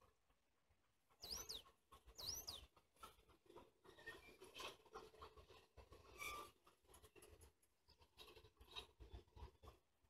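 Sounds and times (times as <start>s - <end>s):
high bird chirps: 1.2s - 1.6s.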